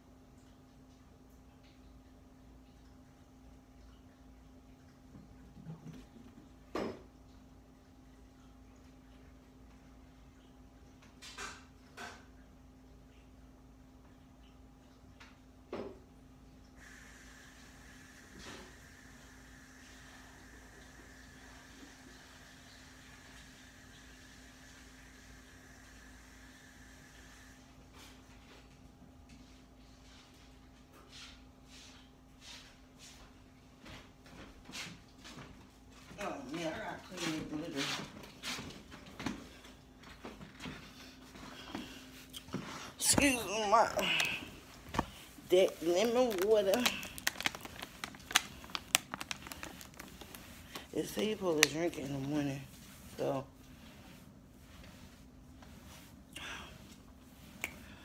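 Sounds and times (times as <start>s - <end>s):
plastic bottle crinkling: 42.4s - 52.4s.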